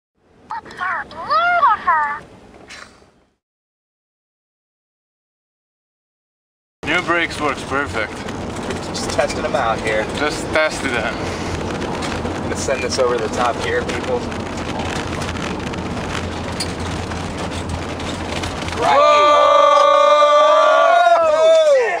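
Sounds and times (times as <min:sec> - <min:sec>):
vehicle cabin rumble: 0:00.4 - 0:03.4, 0:06.8 - 0:21.7
short hiss: 0:02.7 - 0:03.1
brakes squealing: 0:06.8 - 0:21.7.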